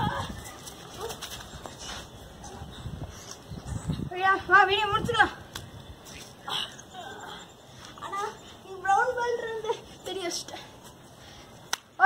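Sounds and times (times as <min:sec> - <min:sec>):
scuffling: 0:00.0 - 0:02.6.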